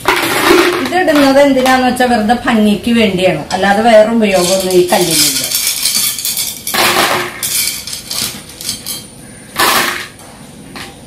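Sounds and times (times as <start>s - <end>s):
pebbles and beads clattering on glass: 4.3s - 10.1s.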